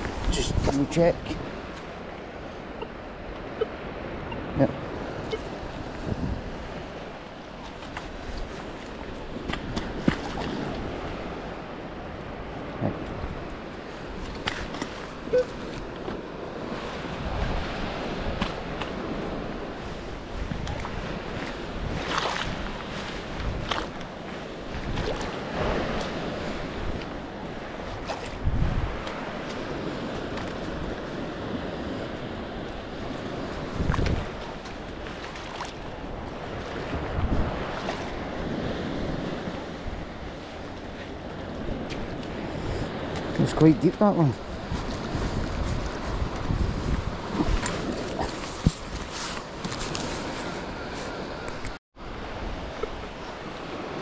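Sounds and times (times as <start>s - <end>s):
surf on beach: 0.0s - 54.0s
wind on microphone: 0.0s - 54.0s.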